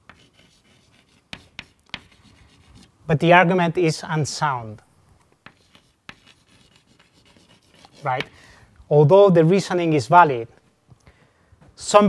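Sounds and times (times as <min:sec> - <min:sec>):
chalk scratching on blackboard: 0:00.0 - 0:02.9, 0:05.4 - 0:08.4
chalk taps: 0:00.0 - 0:02.9, 0:05.3 - 0:08.4.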